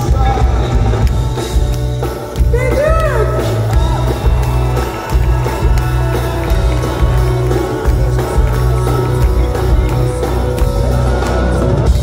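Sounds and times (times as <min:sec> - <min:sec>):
drum beat: 0:00.0 - 0:12.0
heavy bass line: 0:00.0 - 0:12.0
live pop band playing: 0:00.0 - 0:12.0
person singing: 0:02.5 - 0:12.0.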